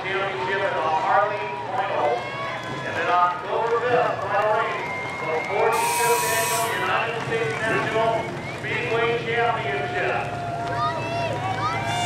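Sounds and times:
voices talking: 0:05.5 - 0:10.3.

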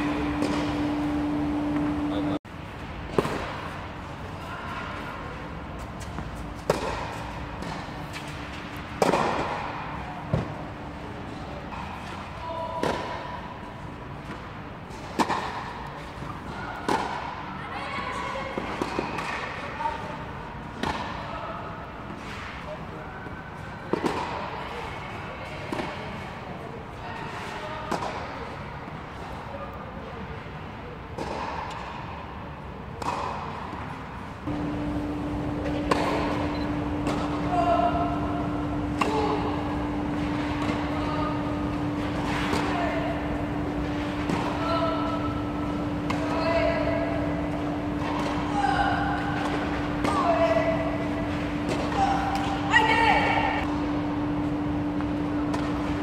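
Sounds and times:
tennis balls hit by rackets: 0:00.0 - 0:02.1, 0:03.0 - 0:03.9, 0:05.8 - 0:12.2, 0:12.8 - 0:13.4, 0:14.2 - 0:17.4, 0:18.6 - 0:19.7, 0:20.7 - 0:21.3, 0:23.9 - 0:24.5, 0:31.1 - 0:32.1, 0:33.0 - 0:56.0
steady low hum: 0:00.0 - 0:17.8, 0:31.6 - 0:56.0.

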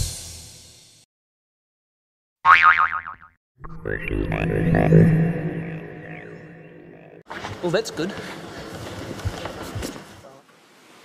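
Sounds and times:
cartoon boing: 0:02.5 - 0:07.2.

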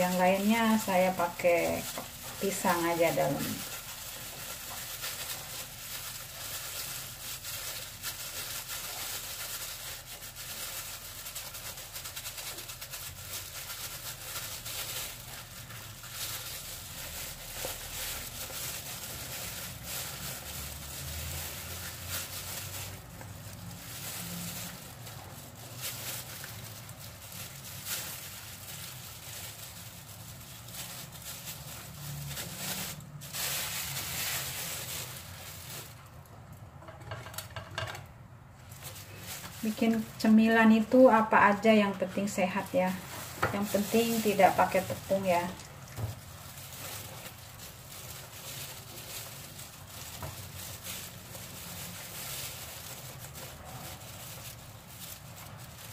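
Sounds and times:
leaves and plastic glove rustling: 0:00.0 - 0:36.6, 0:38.6 - 0:55.9
steady crackle: 0:00.0 - 0:36.6, 0:38.6 - 0:55.9.

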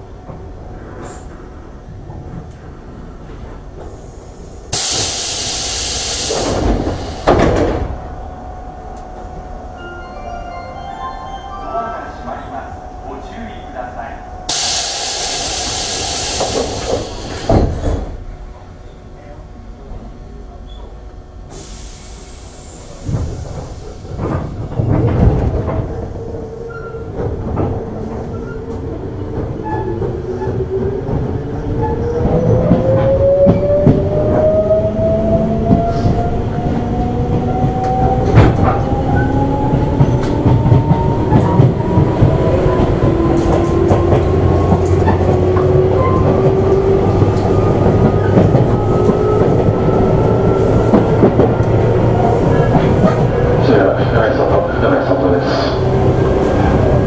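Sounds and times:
train running rumble: 0:00.0 - 0:57.0
train thump: 0:04.7 - 0:08.1, 0:14.5 - 0:18.7, 0:22.9 - 0:26.2, 0:37.4 - 0:39.0
wheels clacking on rails: 0:12.2 - 0:18.7, 0:22.3 - 0:57.0.

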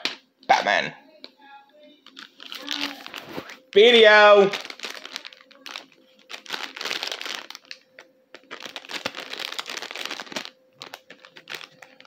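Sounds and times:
packaging rustling crackly: 0:02.0 - 0:12.0.

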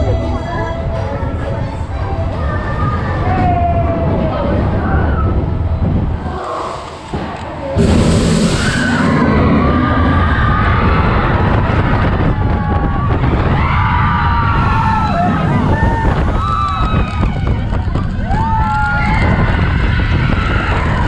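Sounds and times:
roller coaster cars rumbling: 0:00.0 - 0:21.0
loud rush of noise: 0:01.2 - 0:21.0
riders screaming and cheering: 0:02.4 - 0:05.6, 0:08.4 - 0:21.0.

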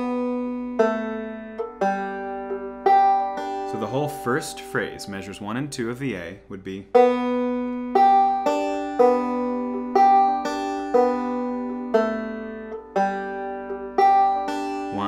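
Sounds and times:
banjo picked slowly: 0:00.0 - 0:15.0.

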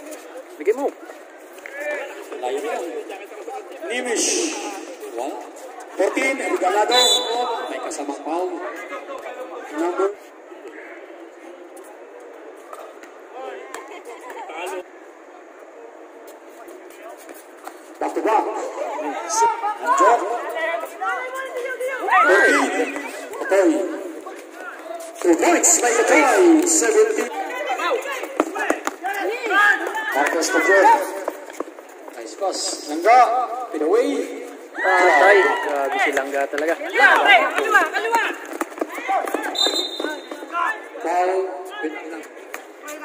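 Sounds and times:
chatter of people: 0:00.0 - 0:43.0
players' voices and calls: 0:00.0 - 0:43.0.

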